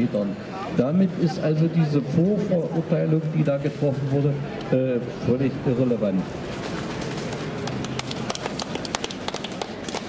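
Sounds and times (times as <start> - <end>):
town square background noise: 0.0 - 10.0.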